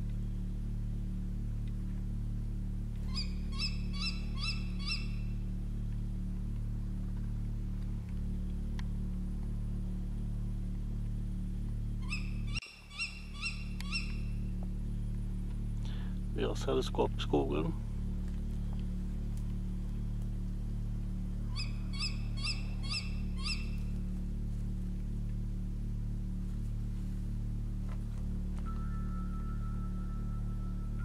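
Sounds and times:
steady low hum: 0:00.0 - 0:31.0
owl calling: 0:03.0 - 0:05.4, 0:12.0 - 0:14.6, 0:21.4 - 0:24.0.

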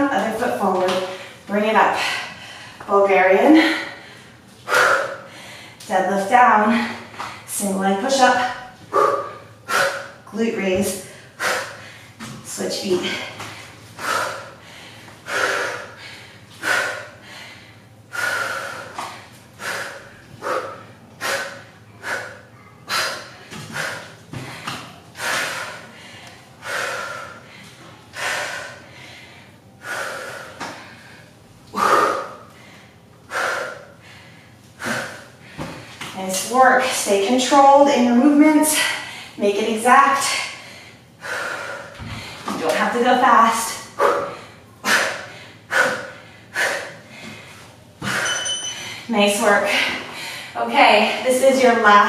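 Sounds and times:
woman breathing hard: 0:00.9 - 0:05.9, 0:08.3 - 0:36.1, 0:38.7 - 0:39.4, 0:40.2 - 0:42.6, 0:43.6 - 0:51.2.

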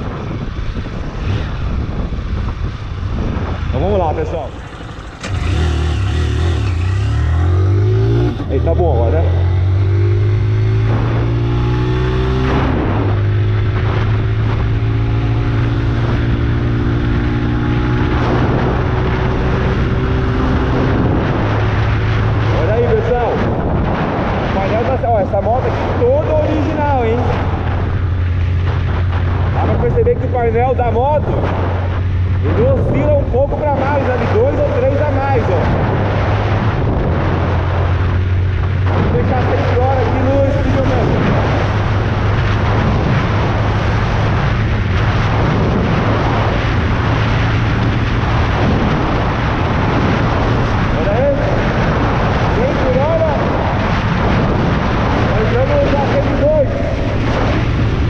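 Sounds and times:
motorcycle engine accelerating: 0:00.0 - 0:58.0
wind rushing: 0:00.0 - 0:58.0.

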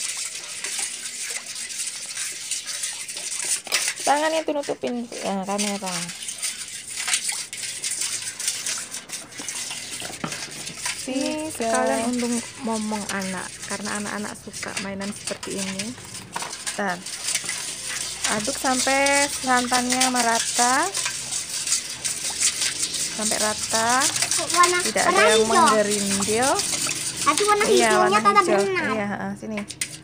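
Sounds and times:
whisk clicking on pot: 0:00.0 - 0:30.0
whisk swishing liquid: 0:00.0 - 0:30.0.

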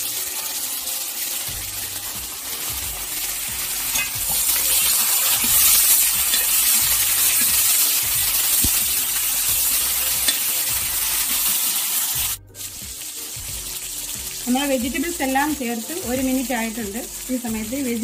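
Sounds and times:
vegetables sizzling in hot oil: 0:00.0 - 0:18.0
metal spoon stirring in wok: 0:03.8 - 0:10.6.

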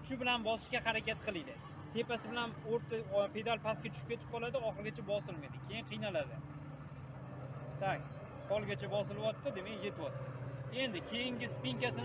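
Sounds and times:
man talking: 0:10.7 - 0:12.0.

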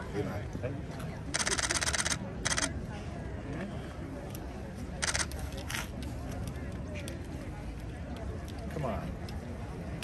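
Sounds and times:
camera shutter clicking: 0:01.4 - 0:02.7, 0:05.0 - 0:05.9.

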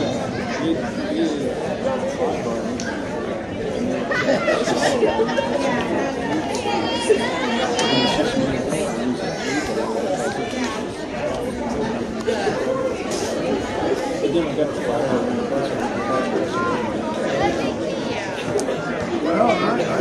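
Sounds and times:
indistinct chatter of spectators: 0:00.0 - 0:20.0.

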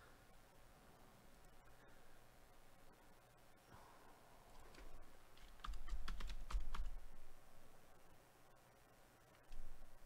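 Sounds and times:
computer keyboard typing: 0:04.6 - 0:07.0.

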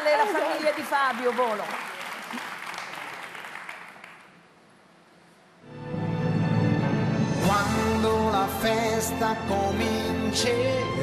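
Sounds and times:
studio audience applauding: 0:00.0 - 0:04.6.

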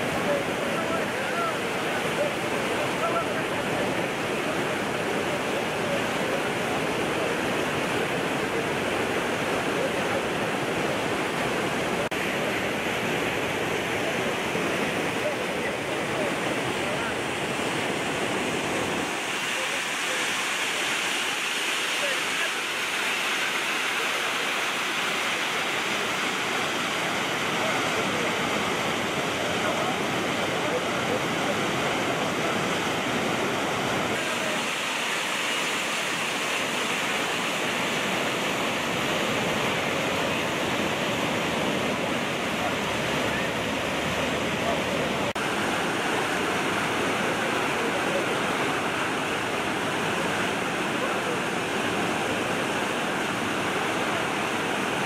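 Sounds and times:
flash flood water rushing: 0:00.0 - 0:55.0.

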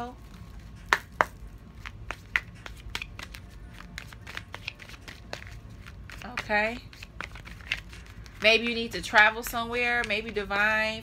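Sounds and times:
cards handled in hands: 0:00.2 - 0:08.8
sharp card taps: 0:00.9 - 0:08.6.

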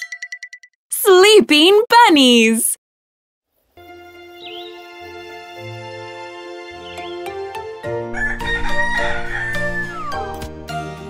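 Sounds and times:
background music: 0:03.8 - 0:11.0
cartoon rooster crowing: 0:08.1 - 0:10.4.

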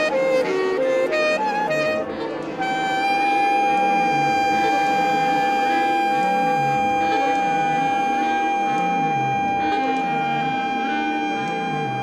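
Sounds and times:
held high note: 0:02.6 - 0:12.0.

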